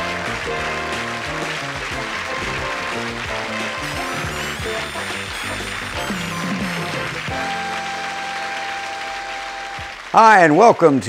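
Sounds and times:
sitcom theme tune: 0:00.0 - 0:10.1
studio audience applauding: 0:00.0 - 0:11.0.

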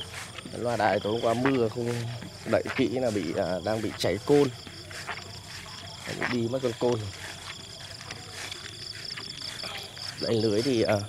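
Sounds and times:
crickets chirping: 0:00.0 - 0:11.0
faint field background: 0:00.0 - 0:11.0.

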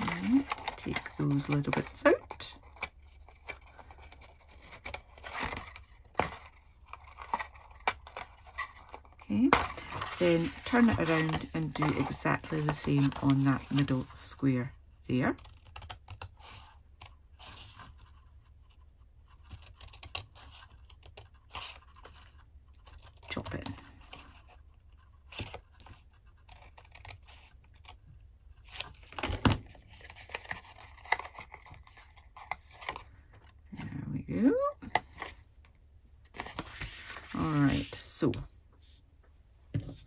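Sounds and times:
card crackling when handled: 0:25.2 - 0:33.6.

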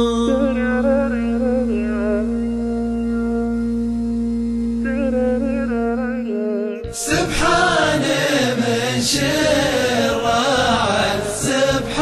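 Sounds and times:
steady drone: 0:00.0 - 0:12.0
solo voice chanting: 0:04.9 - 0:12.0
chorus of voices: 0:06.8 - 0:12.0.

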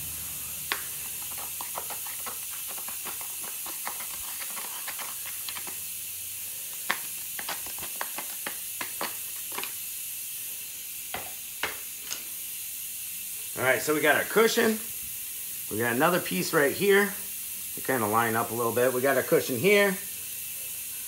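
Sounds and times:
steady hiss: 0:00.0 - 0:21.0.

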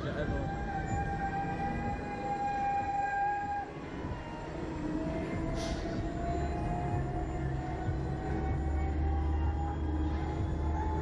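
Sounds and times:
mechanical whine of ride: 0:00.0 - 0:11.0.

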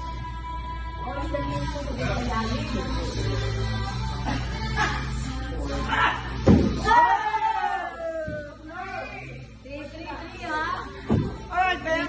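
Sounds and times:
soft thud: 0:06.4 - 0:06.8, 0:11.0 - 0:11.4.

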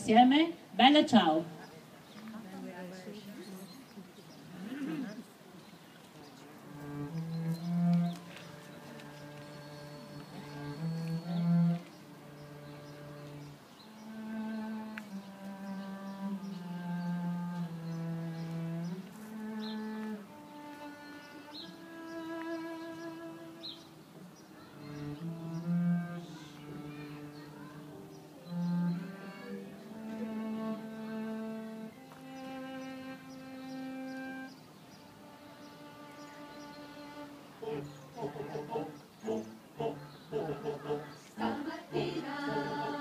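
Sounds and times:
cello: 0:01.2 - 0:43.0.

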